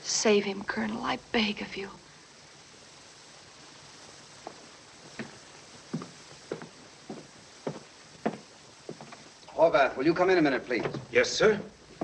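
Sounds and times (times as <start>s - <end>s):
faint steady hiss: 0.0s - 12.0s
footsteps on hard floor: 4.4s - 9.3s, 10.7s - 12.0s.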